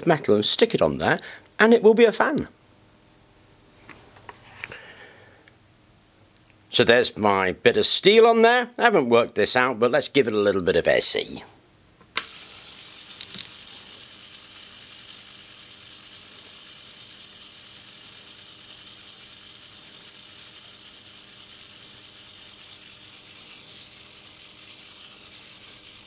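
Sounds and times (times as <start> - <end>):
low mains hum: 0.0 - 26.0
high rattling buzz: 12.2 - 26.0.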